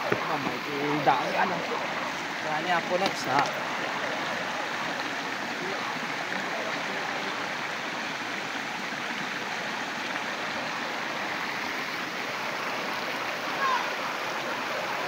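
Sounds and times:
stream rushing over rocks: 0.0 - 15.0.

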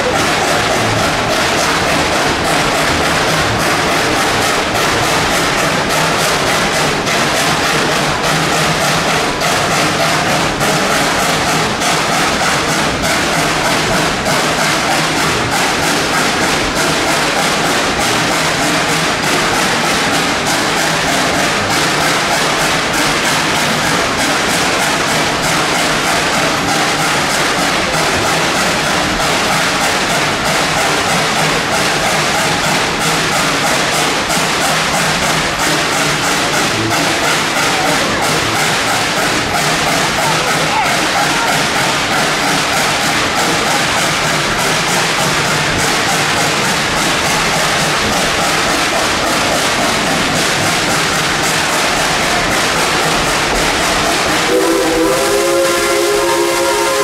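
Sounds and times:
steam locomotive chuffing: 0.0 - 57.0
train running on rails: 0.0 - 57.0.

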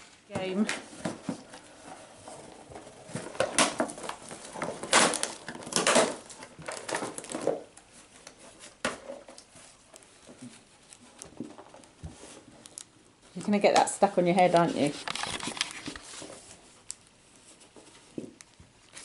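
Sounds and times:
puppy rustling gift bag: 0.0 - 18.2.

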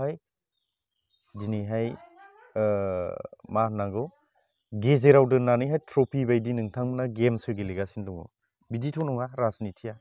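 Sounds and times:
man speaking: 1.4 - 4.1, 4.7 - 10.0.

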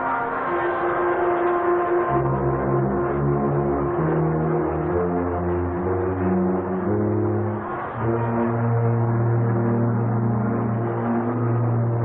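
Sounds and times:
marching band playing held notes: 0.0 - 12.0.

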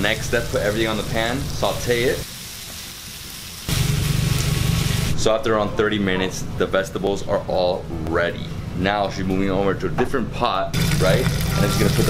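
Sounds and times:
vegetables sizzling in frying pan: 0.0 - 5.2, 10.8 - 12.0.

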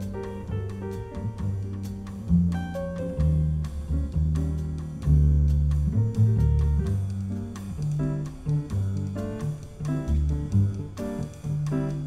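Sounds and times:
double bass notes: 0.0 - 12.0
light drums: 0.0 - 12.0
piano notes: 0.0 - 12.0.

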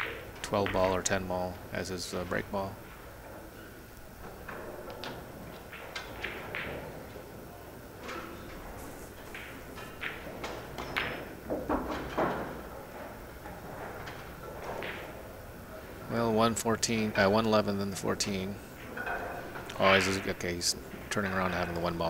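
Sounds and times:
pool balls clicking: 0.0 - 22.0
cue tip striking ball: 4.2 - 15.2.

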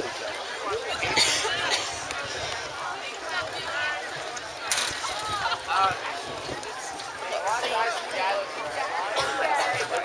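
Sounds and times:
open-air background noise: 0.0 - 10.0.

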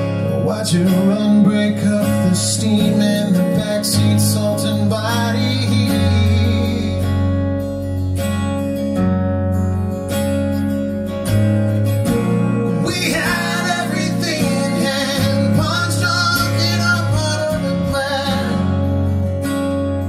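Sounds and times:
man singing: 0.0 - 7.6, 12.1 - 19.1
strummed acoustic guitars: 0.0 - 20.0
sustained keyboard chords: 0.0 - 20.0.

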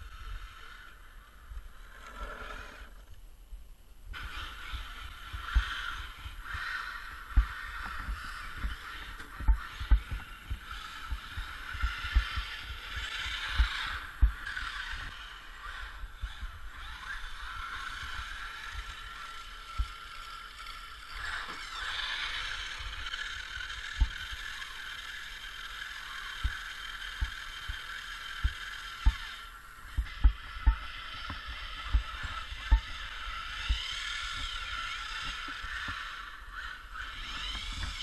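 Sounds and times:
electric toy truck motors whining: 0.0 - 3.2, 4.1 - 38.0.

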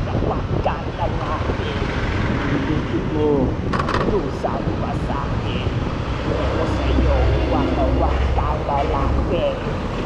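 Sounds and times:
person talking: 0.0 - 1.9, 2.5 - 9.7
wind rumble on microphone: 0.0 - 10.0.

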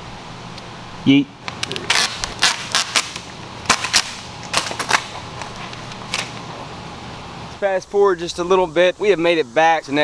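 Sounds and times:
low steady hum: 0.0 - 10.0
vinyl film crackling and snapping: 1.4 - 6.5.

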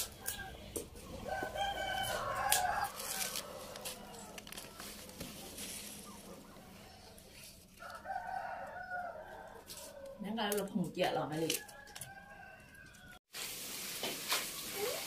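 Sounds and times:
rooster crowing: 0.1 - 5.0, 7.8 - 10.2, 11.6 - 13.2.

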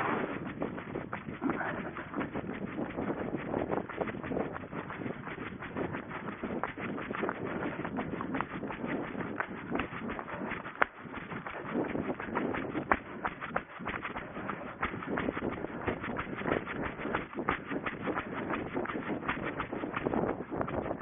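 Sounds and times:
running footfalls: 0.0 - 21.0.

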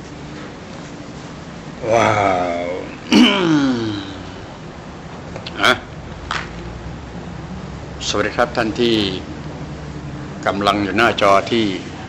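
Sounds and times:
steady low hum: 0.0 - 12.0
person's wordless voice: 1.8 - 4.2
breathy noises: 1.8 - 4.6.

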